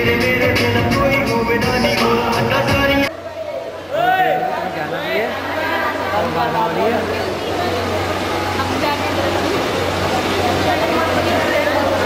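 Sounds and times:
people talking over each other: 2.0s - 12.0s.

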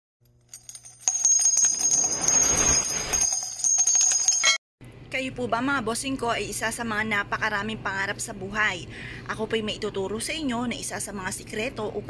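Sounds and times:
bells jingling and ringing: 0.5s - 4.6s.

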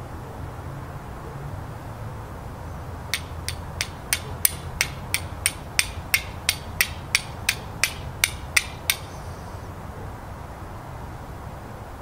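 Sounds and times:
fire striker clicking on flint: 3.2s - 9.1s.

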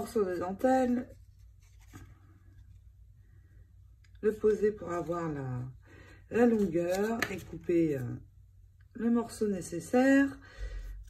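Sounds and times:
paper and lace rustling: 0.1s - 3.0s.

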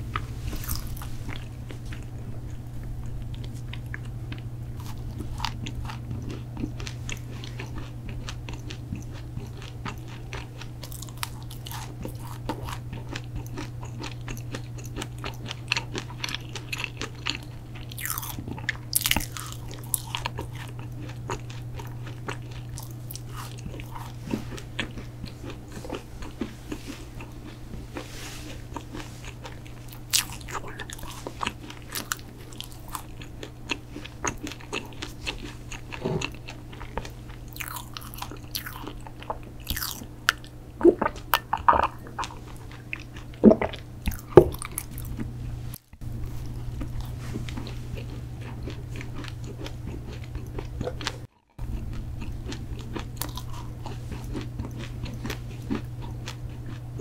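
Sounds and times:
chewing crunchy cookies: 0.0s - 57.0s
low steady hum: 0.0s - 57.0s
wet mouth clicks: 43.4s - 44.5s.

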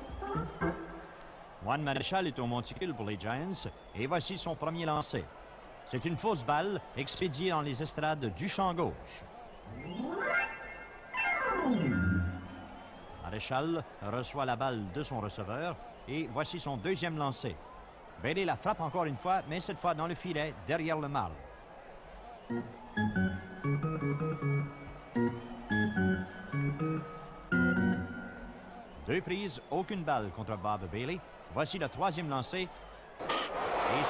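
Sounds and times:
electric organ melody: 9.7s - 12.8s, 22.5s - 28.9s
synthesized whistle-like sweep: 9.7s - 13.0s.

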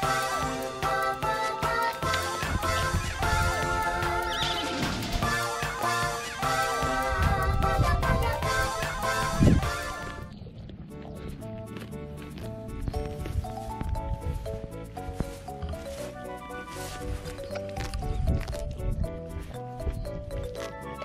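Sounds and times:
light background music: 0.0s - 21.0s
pony tearing and chewing grass: 10.7s - 21.0s.

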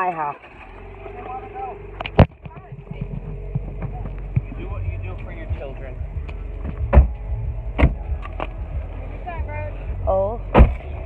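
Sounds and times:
low steady rumble: 0.0s - 11.0s
loud thumps: 2.0s - 8.9s, 10.5s - 11.0s.

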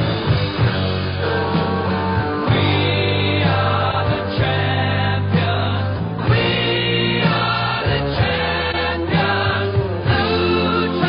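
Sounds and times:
steady musical accompaniment: 0.0s - 11.0s
people singing: 2.4s - 11.0s.

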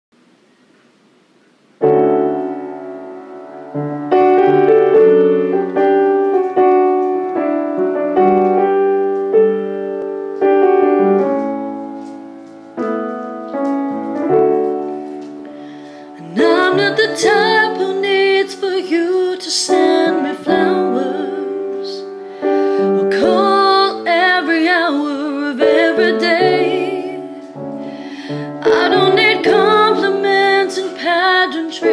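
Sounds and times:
slow piano chords: 1.8s - 31.9s
woman singing a slow ballad: 16.0s - 31.9s.

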